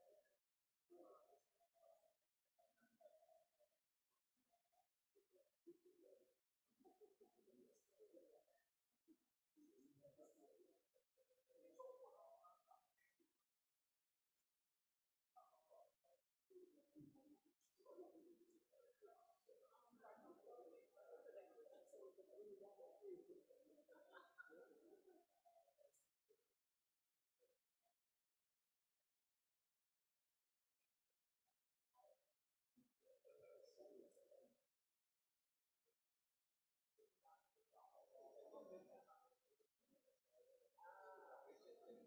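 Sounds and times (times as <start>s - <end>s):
murmur of people talking: 15.4s - 26.2s, 32.8s - 34.7s, 37.1s - 42.0s.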